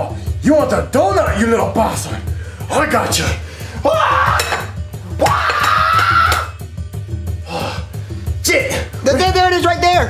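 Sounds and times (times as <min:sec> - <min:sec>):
background music: 0:00.0 - 0:10.0
person crying out: 0:03.8 - 0:06.6.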